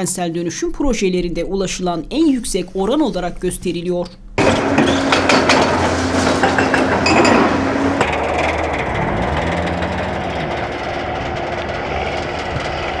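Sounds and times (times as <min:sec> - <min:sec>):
concrete debris clanking: 0:04.4 - 0:13.0
excavator diesel engine: 0:04.4 - 0:13.0.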